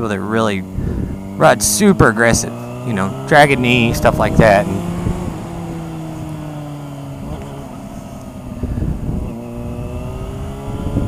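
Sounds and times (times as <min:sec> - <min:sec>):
motorcycle engine: 0:00.0 - 0:11.0
wind noise: 0:00.6 - 0:11.0.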